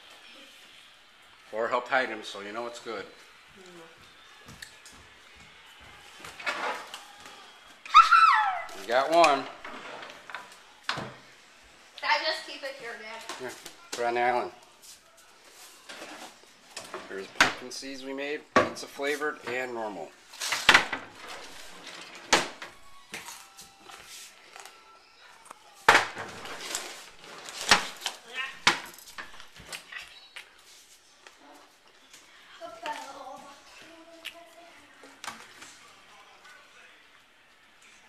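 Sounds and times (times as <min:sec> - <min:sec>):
kitchen items knocking and clattering: 0:06.3 - 0:07.0, 0:15.9 - 0:17.7, 0:18.5 - 0:19.7, 0:20.4 - 0:22.8, 0:25.9 - 0:29.7.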